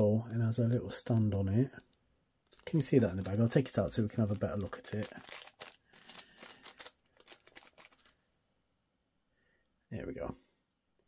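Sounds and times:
faint crackles: 1.0 - 8.2
plastic bag crinkling: 2.4 - 8.3.

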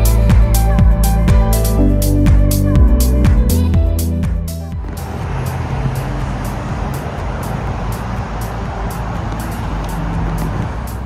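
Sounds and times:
electronic background music: 0.0 - 11.0
road traffic rushing: 4.0 - 11.0.

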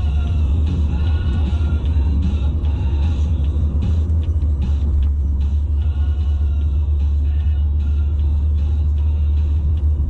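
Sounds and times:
music playing: 0.0 - 10.0
road and engine rumble: 0.0 - 10.0.

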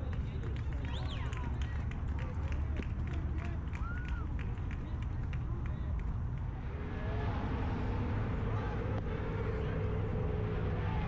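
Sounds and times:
wind rumble on microphone: 0.0 - 11.0
distant shouting voices: 6.5 - 11.0.

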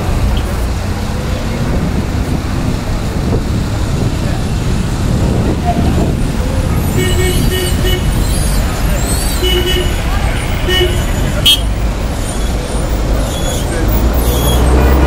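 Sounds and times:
passing cars rumbling: 0.0 - 15.0
car horn tooting: 6.7 - 8.2, 9.3 - 11.8.

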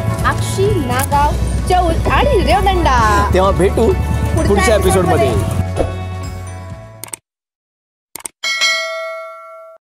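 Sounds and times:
notification bell ding: 8.4 - 9.8.

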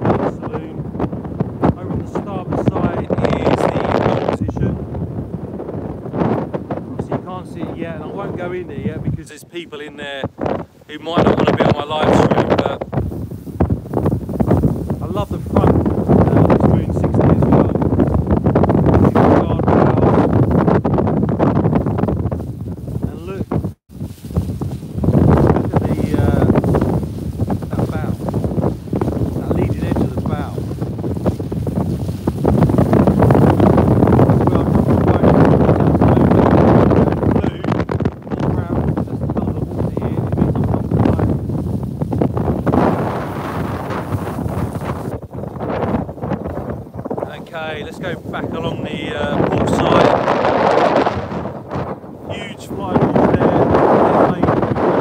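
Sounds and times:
gusting wind on microphone: 0.0 - 55.0
water rushing along hull: 0.0 - 55.0.

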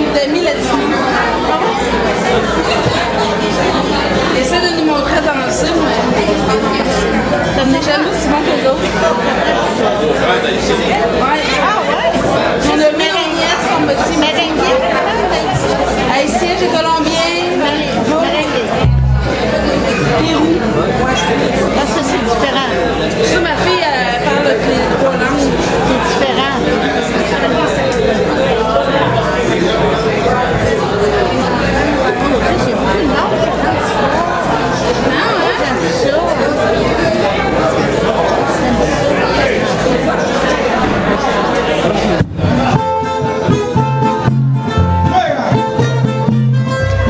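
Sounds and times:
babble of overlapping voices: 0.0 - 47.0
people chattering: 0.0 - 47.0.

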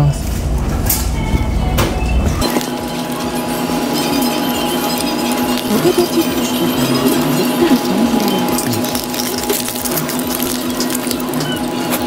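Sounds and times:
low hum: 0.1 - 12.0
chewing fried chicken: 2.4 - 12.0.

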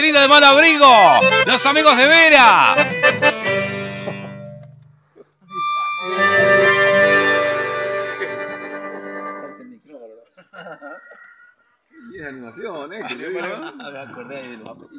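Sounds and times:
voices: 0.0 - 2.9
accordion music: 0.0 - 4.8, 5.4 - 9.7.

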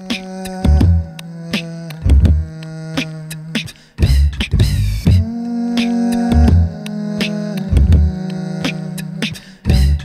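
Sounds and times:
beatboxed drum sounds: 0.0 - 10.0
hummed bass tone: 4.0 - 5.4, 6.3 - 6.9, 7.7 - 8.2, 9.7 - 10.0.

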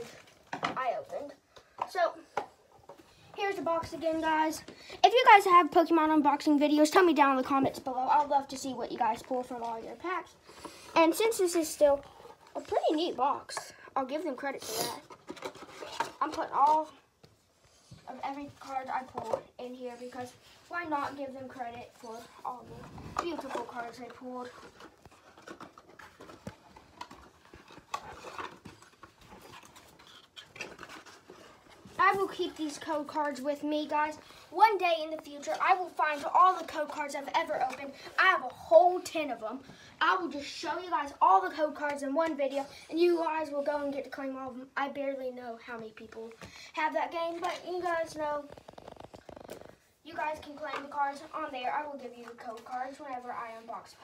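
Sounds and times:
boy speaking: 0.0 - 2.5, 3.3 - 15.1, 15.8 - 17.1, 18.0 - 24.8, 31.9 - 48.6, 50.0 - 54.0.

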